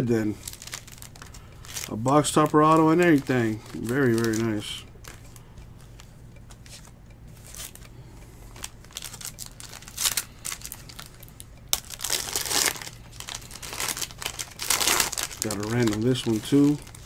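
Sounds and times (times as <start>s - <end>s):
foil wrapper crinkling: 0.0s - 5.2s, 8.5s - 17.0s.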